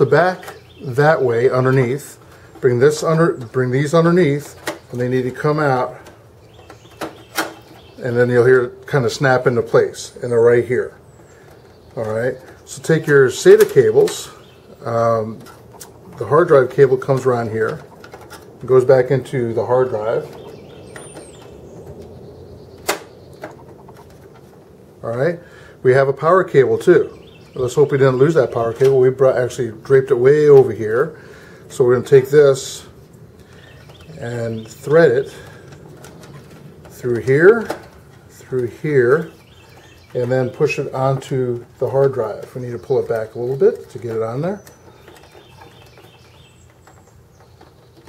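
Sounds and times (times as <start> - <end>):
faint steady hiss: 0.0 - 48.0
cable and plastic parts clicking: 33.5 - 48.0.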